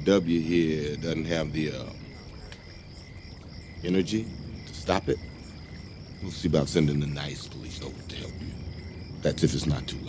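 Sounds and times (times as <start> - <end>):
man talking: 0.0 - 2.2, 3.8 - 5.2, 6.2 - 8.6, 9.2 - 10.0
crickets chirping: 0.0 - 10.0.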